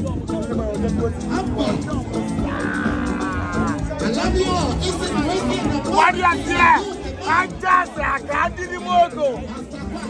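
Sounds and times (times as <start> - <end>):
man speaking through microphone: 0.0 - 2.5, 3.8 - 10.0
background music: 0.0 - 10.0
voices talking: 0.0 - 10.0.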